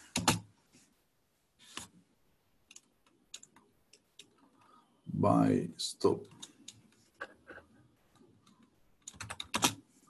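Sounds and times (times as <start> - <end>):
typing on computer keyboard: 0.2 - 0.4, 2.7 - 4.5, 8.4 - 9.8.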